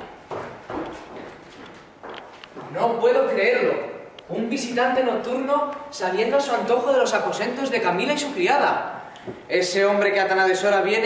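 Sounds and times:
footsteps on cobbled stone: 0:00.0 - 0:02.8.

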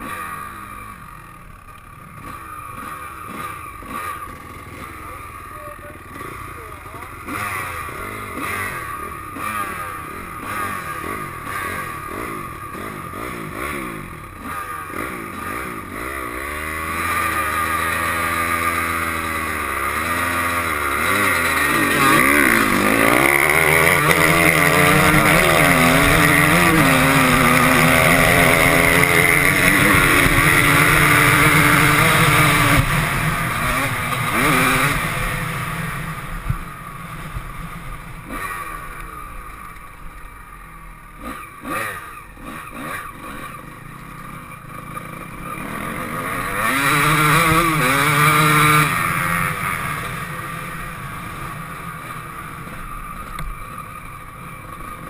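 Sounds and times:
motocross bike engine revving: 0:00.0 - 0:55.0.

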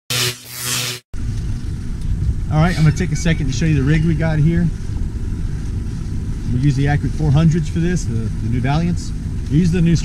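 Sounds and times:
noisy sweep sound effect: 0:00.1 - 0:01.1
boat engine rumble: 0:01.2 - 0:10.0.

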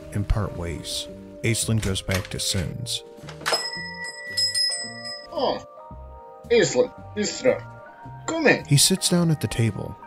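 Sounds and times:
background music: 0:00.0 - 0:10.0
small bell ringing: 0:03.5 - 0:05.6.

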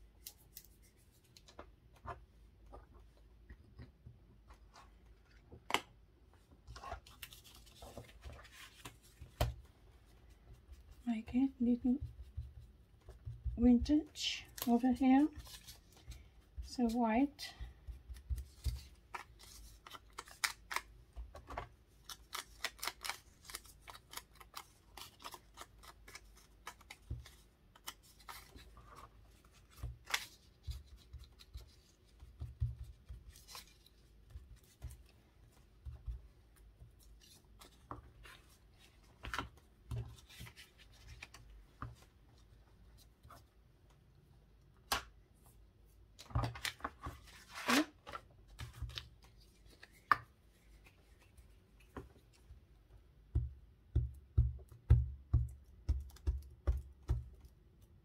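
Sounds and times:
paper rustling and crinkling: 0:06.6 - 0:10.5, 0:14.4 - 0:43.5, 0:46.2 - 0:52.4.

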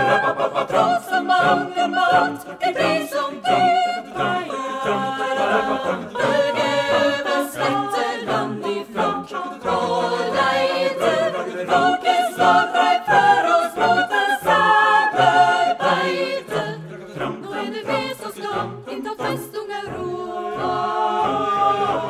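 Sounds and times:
a cappella choir singing: 0:00.0 - 0:22.0.

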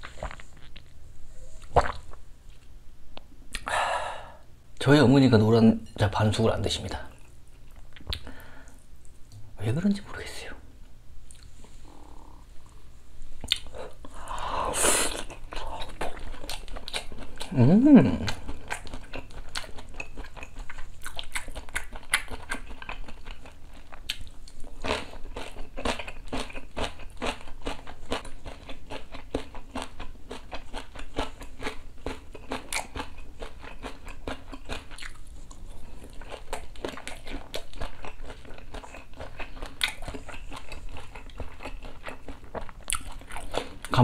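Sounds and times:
person chewing crispy food: 0:00.0 - 0:01.0, 0:15.1 - 0:44.0.

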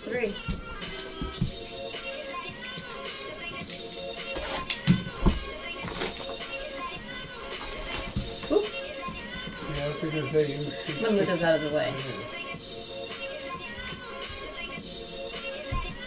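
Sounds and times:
background music: 0:00.0 - 0:16.0
shrink wrap tearing: 0:05.8 - 0:08.5.

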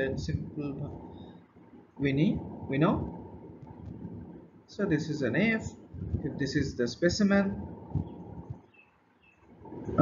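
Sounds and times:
faint low room noise: 0:00.0 - 0:10.0.

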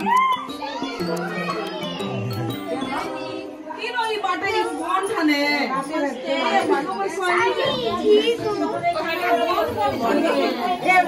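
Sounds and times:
women and children chattering: 0:00.0 - 0:11.0.

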